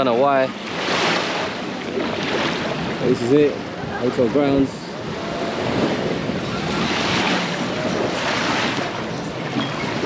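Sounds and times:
surf washing onto beach: 0.0 - 10.0
wind on microphone: 0.0 - 10.0.

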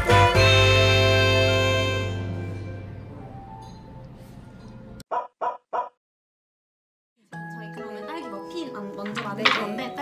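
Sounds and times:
soft background music: 0.0 - 5.0, 7.2 - 10.0.

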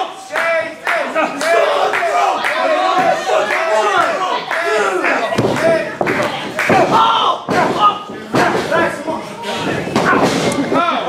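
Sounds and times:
people shouting: 0.7 - 9.0.

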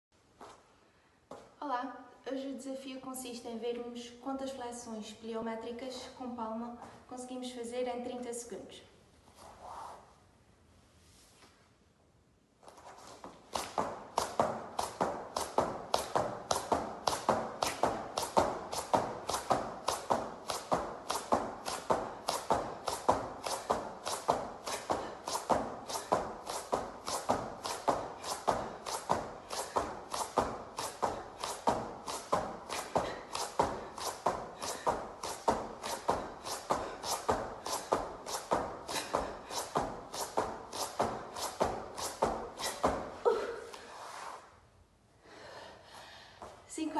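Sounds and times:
palms slapping on exercise mat: 13.3 - 43.2.

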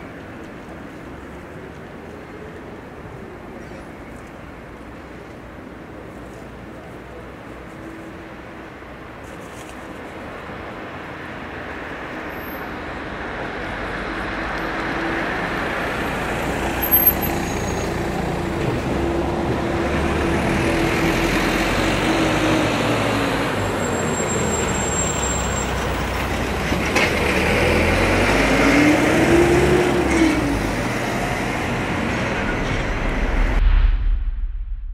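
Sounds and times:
heavy vehicle engine passing: 15.2 - 34.9.

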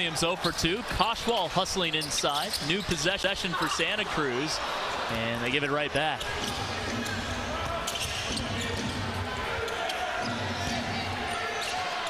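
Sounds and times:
murmur of crowd voices: 0.0 - 12.0.

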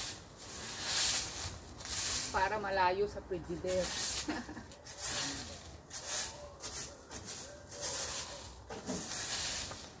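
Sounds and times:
leaves and grit swept on paving: 0.0 - 10.0.

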